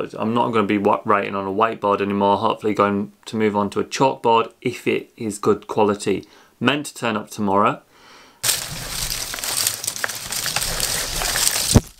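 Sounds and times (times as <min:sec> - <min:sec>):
plastic straps rustling: 0:08.4 - 0:11.9.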